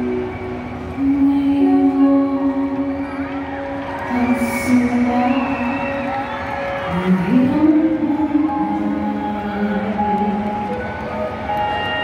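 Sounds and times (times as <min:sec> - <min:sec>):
woman singing a ballad: 0:01.0 - 0:11.2.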